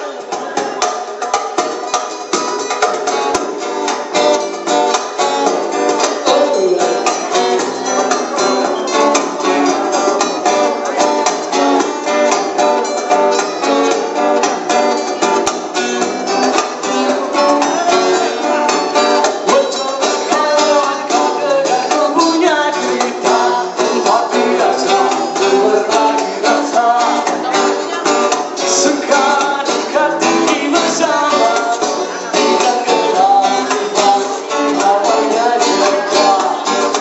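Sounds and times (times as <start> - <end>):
acoustic guitars strumming: 0.0 - 37.0.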